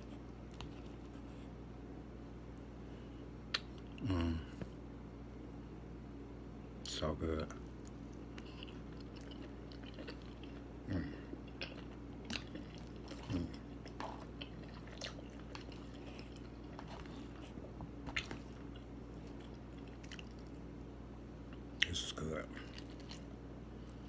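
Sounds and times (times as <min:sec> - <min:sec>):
person chewing food: 0:00.0 - 0:01.4, 0:07.6 - 0:20.8, 0:22.5 - 0:24.0
steady low hum: 0:00.0 - 0:24.0
mouth smacks: 0:03.5 - 0:04.7.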